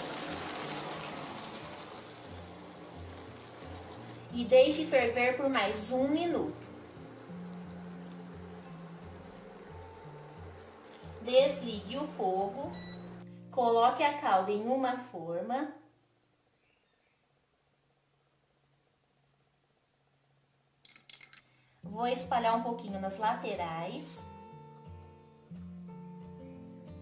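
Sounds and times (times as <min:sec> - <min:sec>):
syrup bubbling in saucepan: 0:00.0 - 0:12.6, 0:20.8 - 0:21.7
quiet music with stepping bass: 0:00.6 - 0:14.2, 0:22.1 - 0:27.0.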